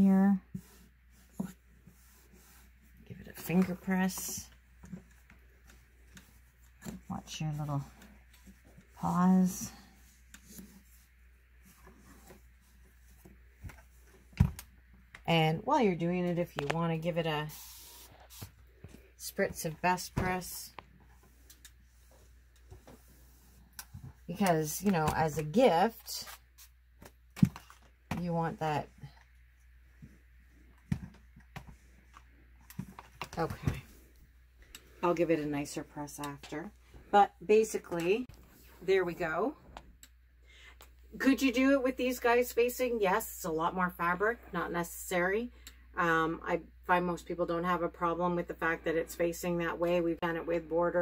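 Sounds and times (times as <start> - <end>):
low steady hum: 0.0 - 51.0.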